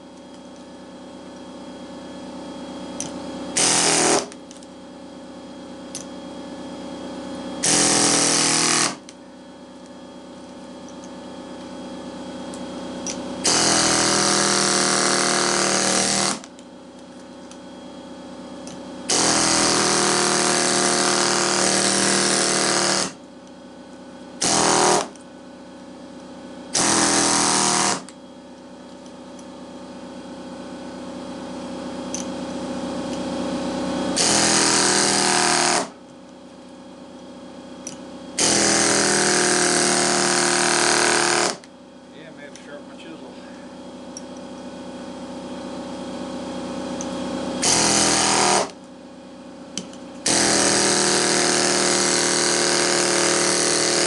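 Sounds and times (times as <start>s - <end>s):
pneumatic air hammer rattling: 3.6s - 4.4s, 7.6s - 9.0s, 13.0s - 16.5s, 19.1s - 23.2s, 24.4s - 25.2s, 26.7s - 28.1s, 34.2s - 36.0s, 37.8s - 41.7s, 47.6s - 48.8s, 49.8s - 54.0s.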